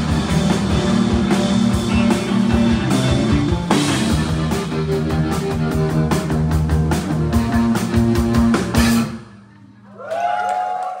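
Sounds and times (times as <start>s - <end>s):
audience whooping: 9.8s - 11.0s.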